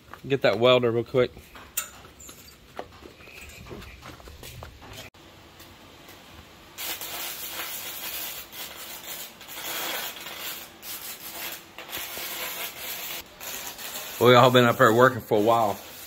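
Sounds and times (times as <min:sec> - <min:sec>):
arc welding crackle: 0:05.0 - 0:16.0.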